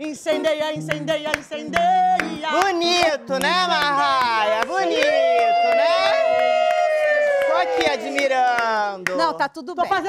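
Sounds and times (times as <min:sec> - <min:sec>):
excited voices: 0:03.5 - 0:09.5.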